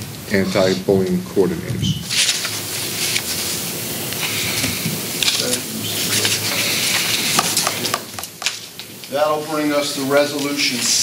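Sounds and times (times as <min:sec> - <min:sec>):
paper rustling: 0:02.0 - 0:08.7.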